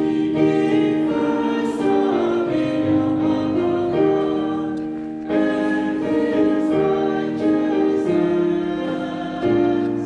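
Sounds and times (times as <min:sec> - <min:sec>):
sustained keyboard chords: 0:00.0 - 0:10.0
voices singing a hymn: 0:00.0 - 0:10.0.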